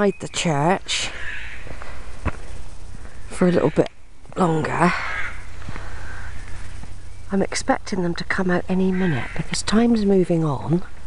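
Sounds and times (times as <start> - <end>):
crow cawing: 1.1 - 1.8, 4.9 - 6.8, 8.8 - 9.6.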